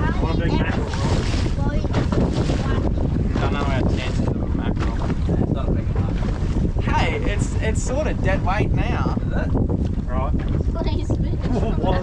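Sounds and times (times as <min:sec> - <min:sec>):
sea wash: 0:00.0 - 0:12.0
wind buffeting microphone: 0:00.0 - 0:12.0.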